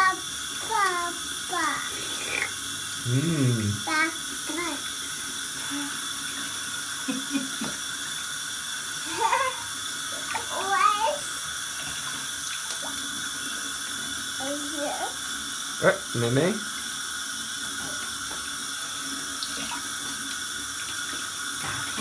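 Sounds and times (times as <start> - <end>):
toddler's high voice: 0.0 - 1.9, 10.4 - 11.3
bathtub spout pouring water: 0.0 - 22.0.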